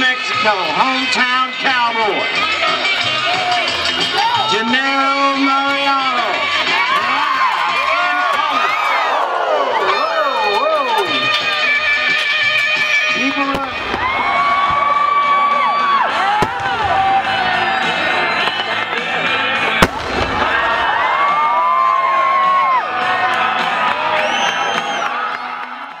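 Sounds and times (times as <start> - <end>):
fireworks banging: 12.2 - 15.3, 16.2 - 21.5.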